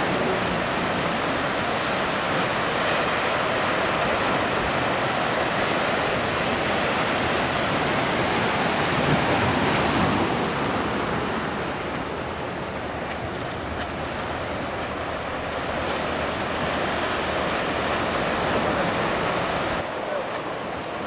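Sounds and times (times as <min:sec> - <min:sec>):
surf breaking: 0:00.0 - 0:21.0.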